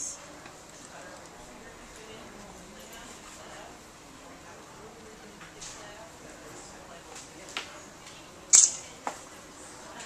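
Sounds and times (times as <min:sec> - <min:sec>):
high-pitched crackling snap: 0:08.5 - 0:08.9.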